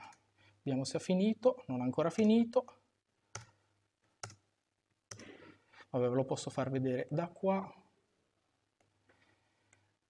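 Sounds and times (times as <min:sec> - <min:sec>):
person speaking: 0:00.0 - 0:02.9
faint breath: 0:05.2 - 0:05.9.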